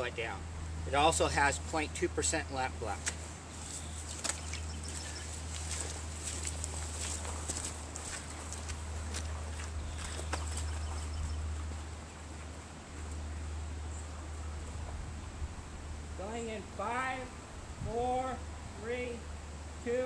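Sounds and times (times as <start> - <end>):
low outdoor hum: 0.0 - 20.0
boots through wet grass and mud: 3.0 - 11.7.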